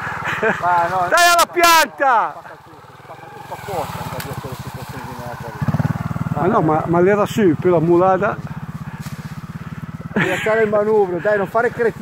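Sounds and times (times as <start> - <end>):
motorcycle engine pulsing: 0.0 - 12.0.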